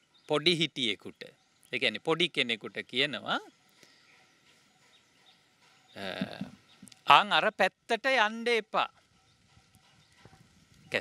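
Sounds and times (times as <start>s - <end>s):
faint outdoor background: 0.0s - 11.0s
man speaking: 0.3s - 3.5s, 6.0s - 6.5s, 7.1s - 8.9s
faint taps: 6.1s - 7.0s.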